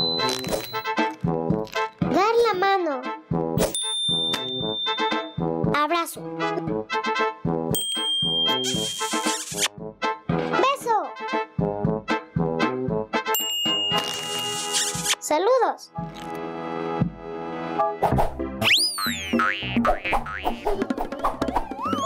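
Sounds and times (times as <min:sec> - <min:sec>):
bouncy cartoon music: 0:00.0 - 0:15.3, 0:16.0 - 0:22.0
comic sliding-pitch effects: 0:18.6 - 0:22.0.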